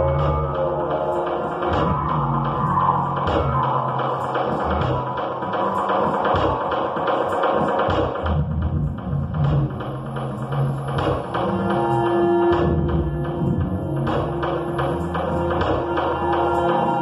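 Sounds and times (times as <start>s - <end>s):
low pulsing tones: 0.0s - 7.3s, 8.2s - 17.0s.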